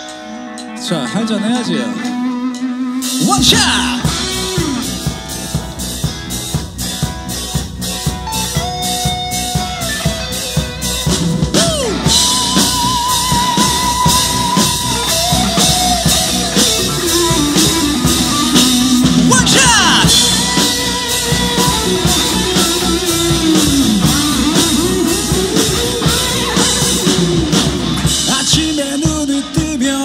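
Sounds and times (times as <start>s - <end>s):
drum kit beat: 0.0s - 30.0s
electric guitar: 0.0s - 30.0s
sliding lead guitar line: 0.0s - 30.0s.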